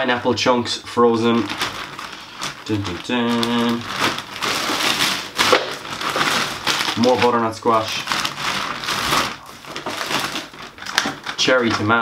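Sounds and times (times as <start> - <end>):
plastic packaging crinkling: 1.0 - 12.0.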